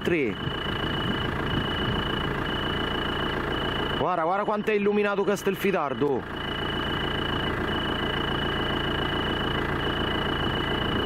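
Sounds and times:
car engine idling: 0:00.0 - 0:11.0
cricket trilling: 0:00.0 - 0:11.0.

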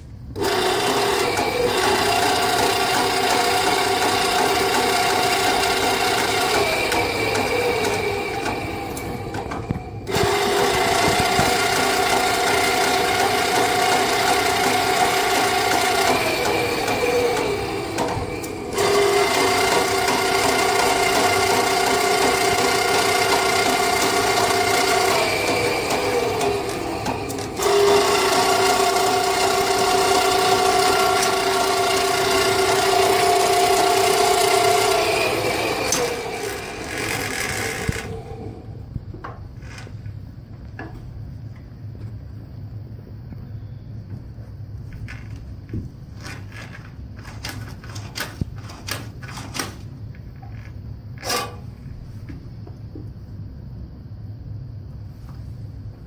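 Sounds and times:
sewer snake motor whining: 0:00.3 - 0:40.9, 0:45.0 - 0:51.9.

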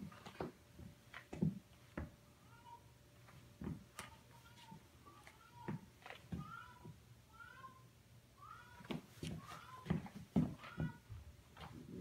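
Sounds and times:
footsteps on hardwood floor: 0:00.0 - 0:02.2, 0:03.2 - 0:07.0, 0:08.7 - 0:11.9.

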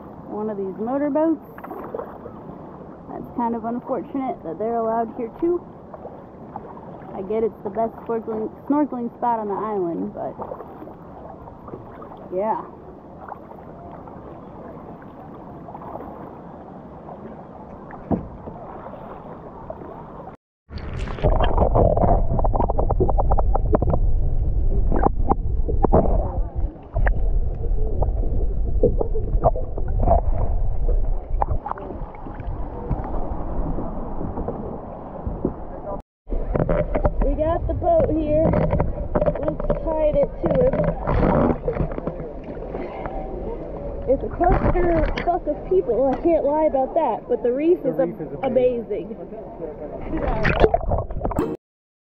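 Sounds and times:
gentle water at the surface: 0:00.0 - 0:51.6
deep underwater rumble: 0:09.4 - 0:47.1, 0:49.8 - 0:51.6
underwater clicks and pops: 0:24.8 - 0:27.6, 0:36.3 - 0:42.6, 0:44.1 - 0:45.4, 0:50.3 - 0:51.6.

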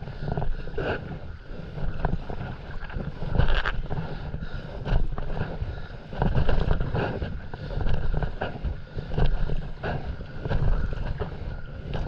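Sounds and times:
wind rumbling on microphone: 0:00.0 - 0:12.0
paddle splashing through water: 0:01.8 - 0:12.0.

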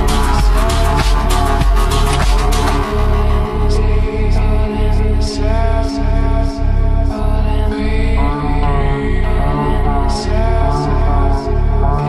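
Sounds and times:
gliding melodic synth line: 0:00.0 - 0:12.0
pulsing heavy bass: 0:00.0 - 0:12.0.

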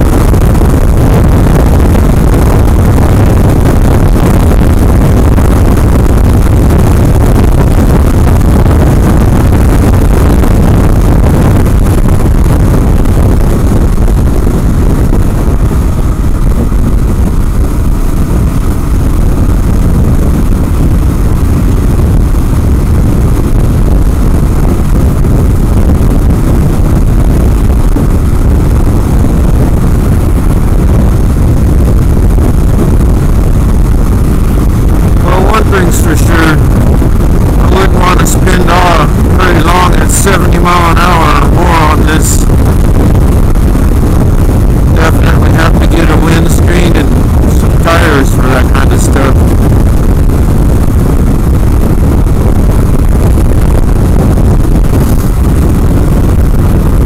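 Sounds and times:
motorcycle engine roaring: 0:00.0 - 0:57.0
wind buffeting microphone: 0:00.0 - 0:57.0.

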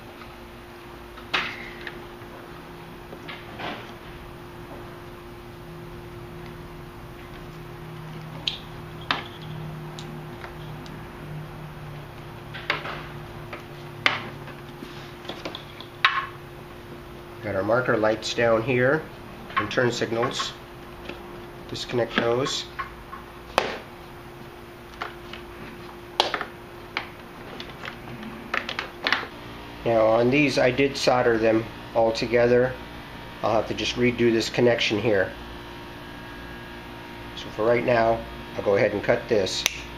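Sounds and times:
steady low hum: 0:00.0 - 0:39.9.

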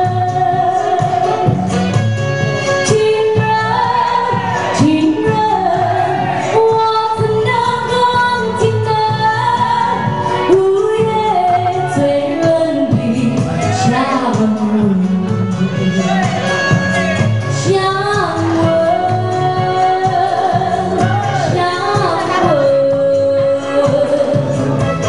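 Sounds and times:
woman singing into microphone: 0:00.0 - 0:02.0, 0:02.6 - 0:16.2, 0:17.4 - 0:24.8
backing music with steady beat: 0:00.0 - 0:25.0.

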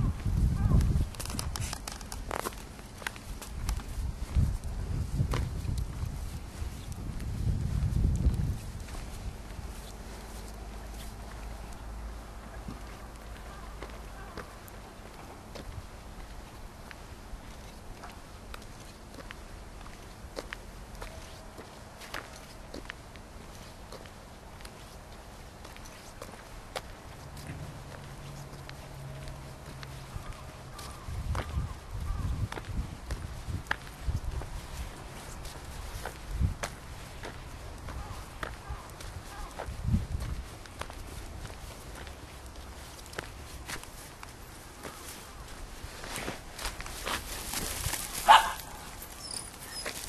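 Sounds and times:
footsteps crunching on dry ground: 0:00.0 - 0:50.0
outdoor background noise: 0:00.0 - 0:50.0.

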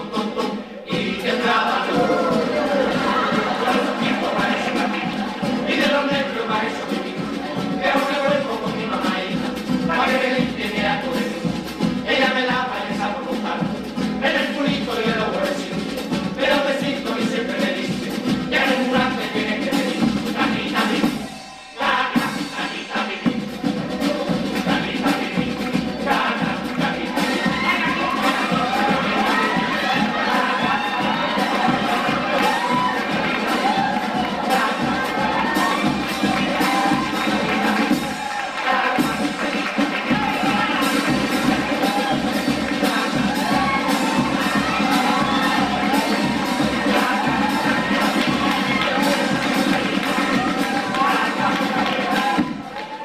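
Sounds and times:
men's group singing: 0:00.0 - 0:52.8
audience cheering and applauding: 0:01.0 - 0:09.3, 0:23.8 - 0:53.0.

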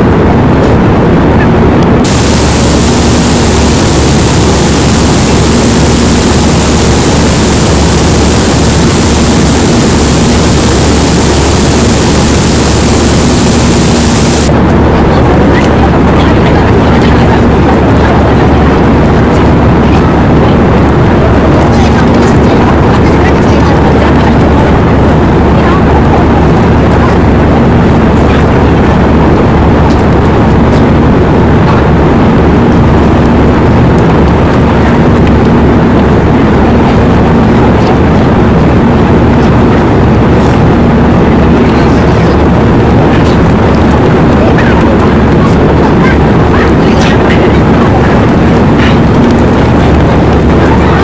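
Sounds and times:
faint hum: 0:00.0 - 0:51.0.

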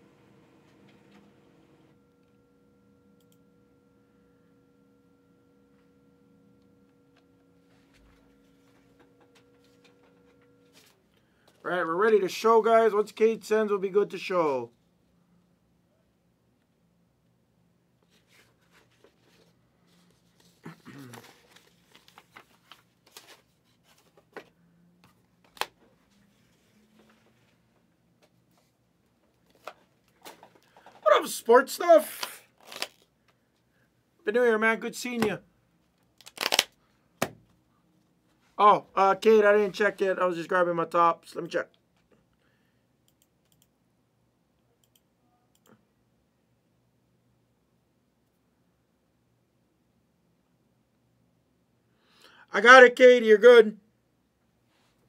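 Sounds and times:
faint steady hum: 0:00.0 - 0:52.9.

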